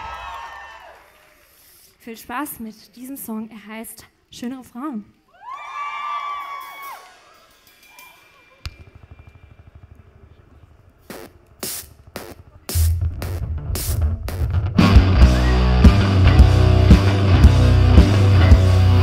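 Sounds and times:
audience whooping: 0.0s - 1.6s, 5.3s - 9.0s, 14.8s - 17.9s
drum hits: 8.7s - 19.0s
live band playing: 11.0s - 19.0s.

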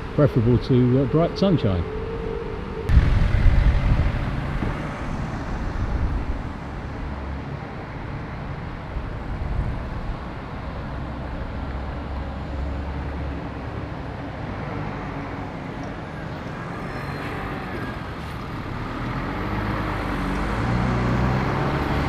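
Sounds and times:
bus engine rumble: 0.0s - 22.0s
traffic noise: 0.0s - 22.0s.

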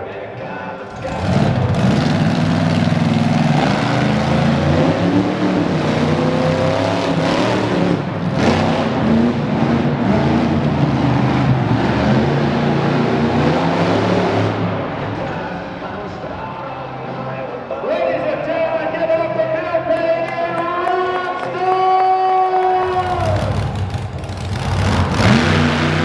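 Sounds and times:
truck engine revving hard: 0.8s - 15.2s, 22.8s - 26.0s.

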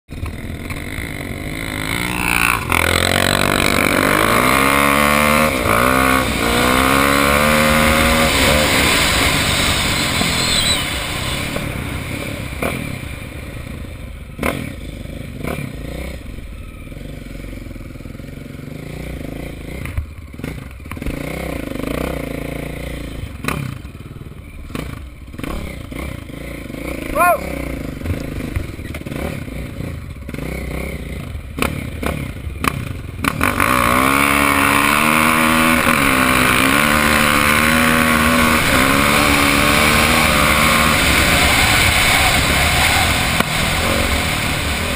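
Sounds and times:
dirt bike engine accelerating: 0.1s - 44.9s.

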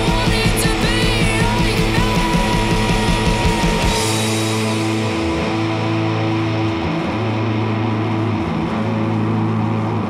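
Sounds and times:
rock band with distorted guitar: 0.0s - 10.0s.

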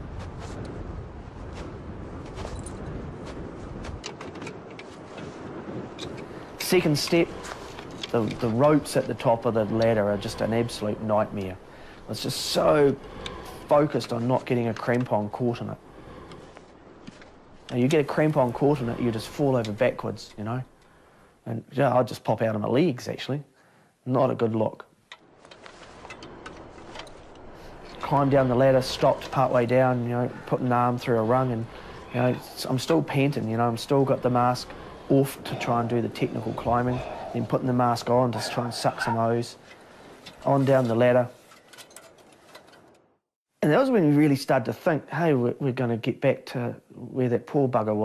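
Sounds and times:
wind buffeting microphone: 0.0s - 21.3s, 25.2s - 41.4s
steady rush: 25.2s - 39.6s.

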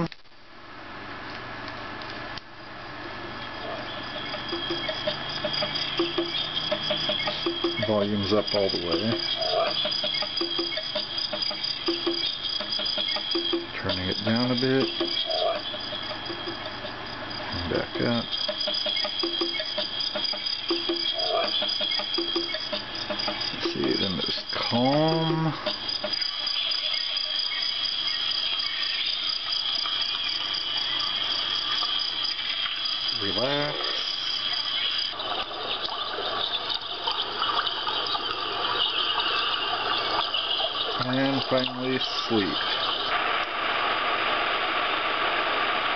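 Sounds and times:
high insect-like trill: 3.4s - 43.1s
running water through tinny speaker: 3.4s - 45.9s
evenly spaced ticks: 3.6s - 43.1s.

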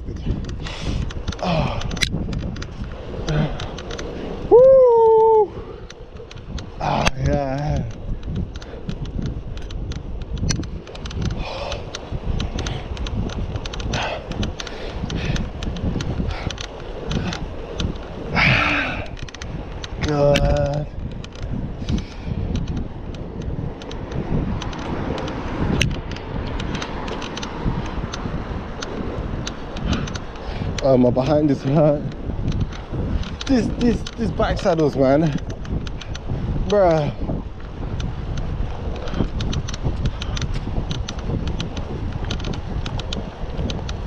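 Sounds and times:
bicycle tyres on road: 0.0s - 44.0s
light ticks: 0.0s - 44.0s
wind rumble on microphone: 0.0s - 44.0s.

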